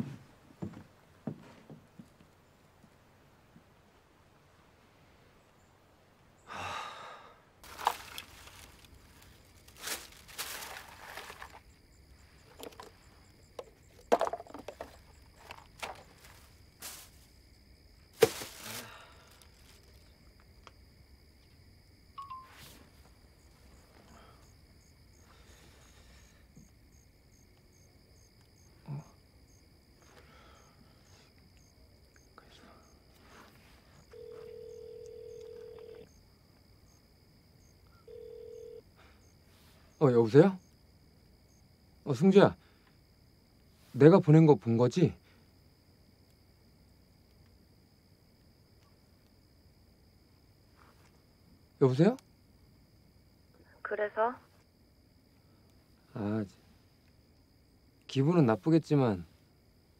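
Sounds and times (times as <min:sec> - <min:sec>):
man sighing: 0:06.5 - 0:07.4, 0:18.6 - 0:19.4
phone call beep: 0:22.2 - 0:22.7, 0:34.1 - 0:36.1, 0:38.0 - 0:38.8.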